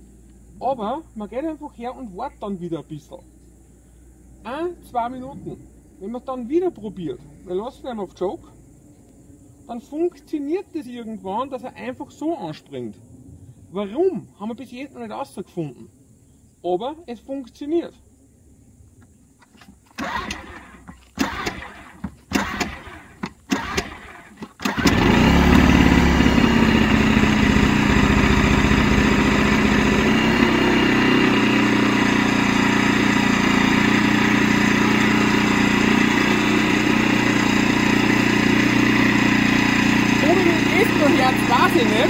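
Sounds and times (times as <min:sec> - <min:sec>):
generator engine running: 0:19.8 - 0:42.0.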